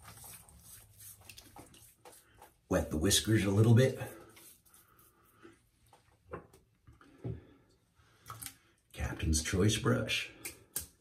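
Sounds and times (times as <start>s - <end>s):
hands rubbing wet face: 0.0s - 2.7s, 3.4s - 6.2s.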